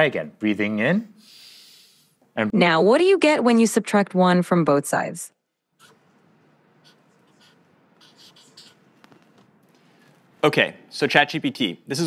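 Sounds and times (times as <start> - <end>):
pen scratching on paper: 6.8 - 8.9.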